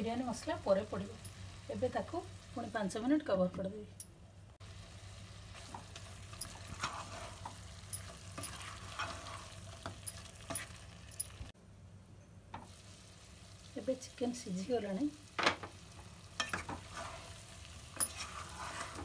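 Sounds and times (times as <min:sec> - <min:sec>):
soft frying sizzle: 0:00.0 - 0:03.9, 0:04.6 - 0:11.6, 0:12.4 - 0:19.0
spatula scraping a pot: 0:05.6 - 0:10.8, 0:16.4 - 0:19.0.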